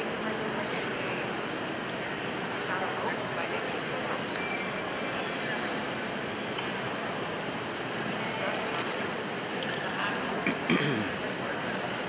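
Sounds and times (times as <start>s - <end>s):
indoor arena background noise: 0.0s - 12.0s
murmur of spectators: 0.0s - 12.0s.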